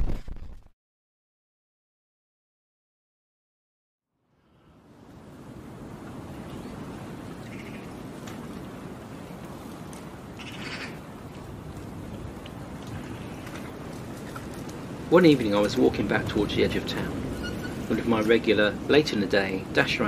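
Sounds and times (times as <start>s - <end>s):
wind blowing through trees: 4.2s - 20.0s
short bird calls: 7.4s - 7.9s, 10.4s - 11.0s.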